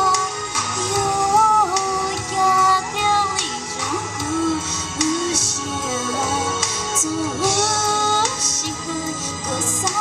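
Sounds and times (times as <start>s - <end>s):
amplified backing music with beat: 0.0s - 10.0s
woman singing into microphone: 0.0s - 10.0s.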